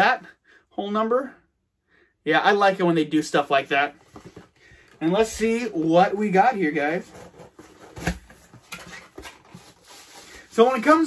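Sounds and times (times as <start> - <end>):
cardboard box rustling and scraping: 6.7 - 10.3.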